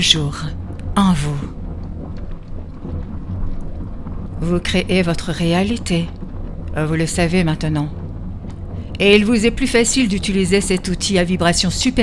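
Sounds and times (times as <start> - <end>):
person narrating: 0.0 - 1.6, 4.4 - 8.0, 9.0 - 12.0
low rumble: 0.0 - 12.0.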